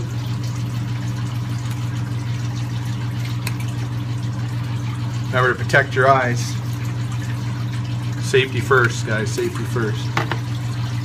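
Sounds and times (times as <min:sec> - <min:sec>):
low equipment hum: 0:00.0 - 0:11.0
running water: 0:00.0 - 0:11.0.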